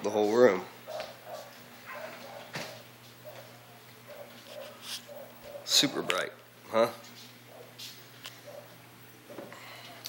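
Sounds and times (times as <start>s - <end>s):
lamp ballast electrical hum: 0.0s - 10.0s.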